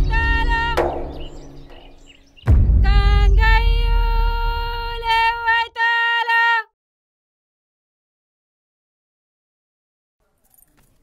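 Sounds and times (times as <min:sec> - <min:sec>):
sustained instrumental backing: 0:00.0 - 0:04.0
sharp hit: 0:00.0 - 0:05.1.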